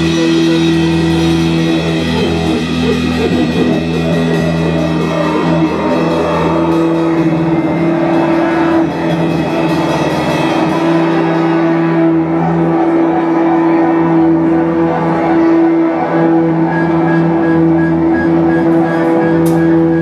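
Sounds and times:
cymbal wash: 0:00.0 - 0:20.0
droning guitar and bass: 0:00.0 - 0:20.0.

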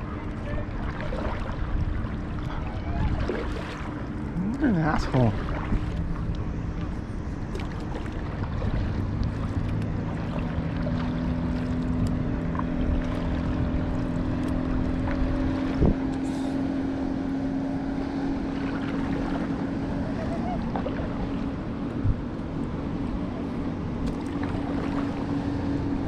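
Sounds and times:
motorboat engine droning: 0:00.0 - 0:26.0
wind buffeting microphone: 0:00.0 - 0:26.0.

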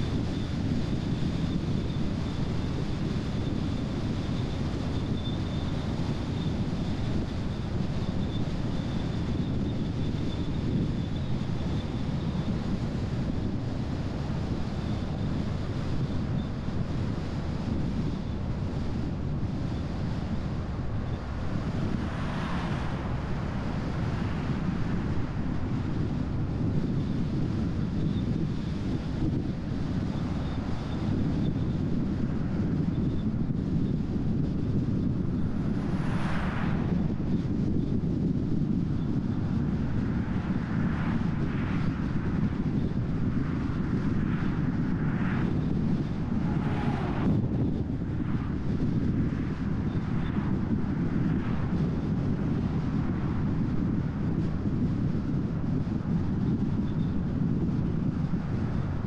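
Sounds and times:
car road and wind noise: 0:00.0 - 0:59.0
vehicles passing: 0:19.5 - 0:27.6, 0:44.2 - 0:49.6.

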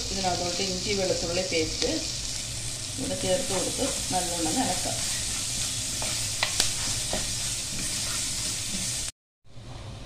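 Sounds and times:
food sizzling in oil: 0:00.0 - 0:09.2.

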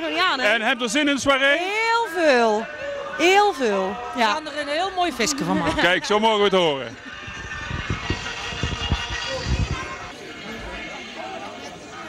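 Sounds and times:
background music: 0:00.0 - 0:12.0
crowd chatter: 0:00.0 - 0:12.0.

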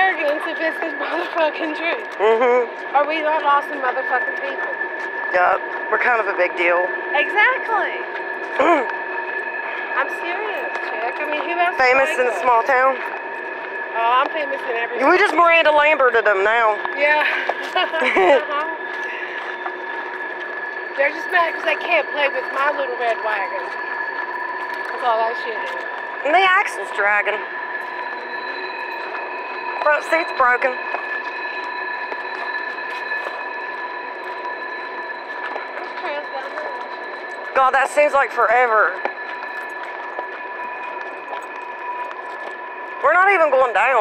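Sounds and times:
axle whine: 0:00.0 - 0:44.0.

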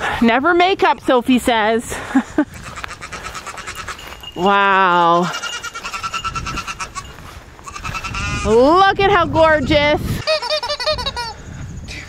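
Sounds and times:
goat bleating: 0:02.5 - 0:08.7.

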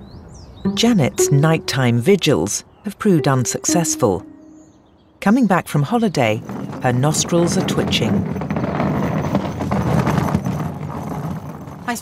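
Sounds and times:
suitcase wheels rolling on tarmac: 0:06.2 - 0:12.0.

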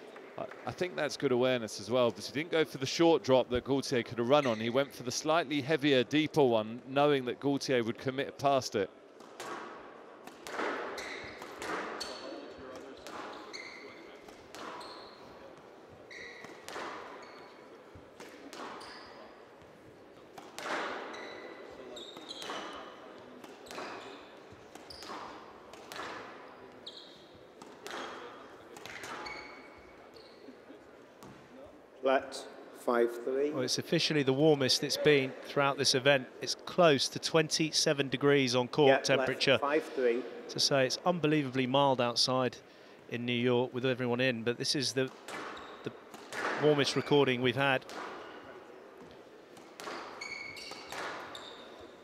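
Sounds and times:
shoes squeaking on court floor: 0:04.3 - 0:05.0, 0:10.4 - 0:31.8, 0:45.1 - 0:52.0
squash ball hits: 0:09.2 - 0:13.5, 0:14.2 - 0:14.8, 0:16.3 - 0:18.9, 0:20.3 - 0:21.1, 0:22.2 - 0:26.5, 0:27.6 - 0:29.2, 0:45.1 - 0:46.7, 0:47.8 - 0:51.4.

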